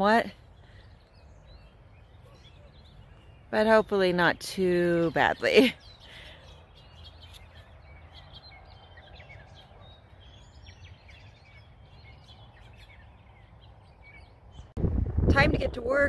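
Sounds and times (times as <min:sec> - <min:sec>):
small birds chirping: 0:00.0 - 0:14.8.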